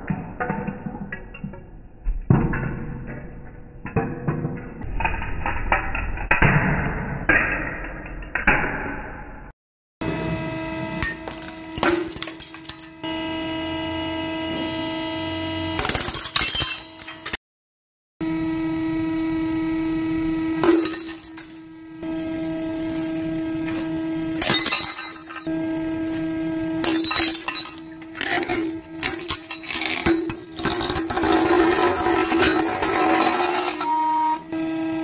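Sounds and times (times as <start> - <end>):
glassware cracking and shattering: 11.3 - 12.9, 15.8 - 17.4, 20.6 - 21.8, 24.4 - 25.5, 26.8 - 33.8.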